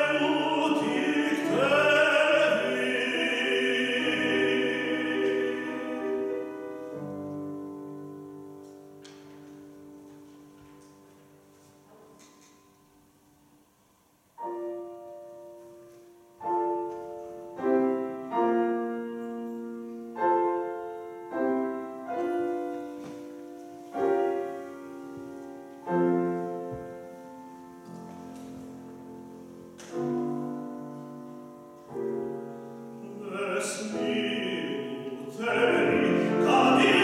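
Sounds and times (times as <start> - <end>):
piano chords ringing: 0.0 - 37.0.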